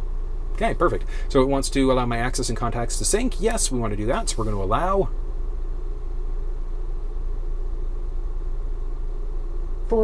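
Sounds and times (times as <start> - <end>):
car engine idling: 0.0 - 8.2.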